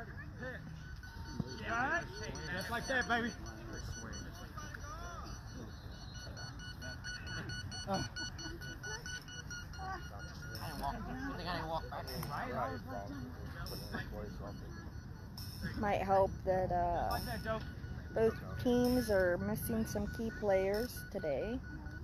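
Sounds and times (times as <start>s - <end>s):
people talking: 0.0s - 14.9s, 15.6s - 21.7s
high electronic beeps: 0.0s - 22.0s.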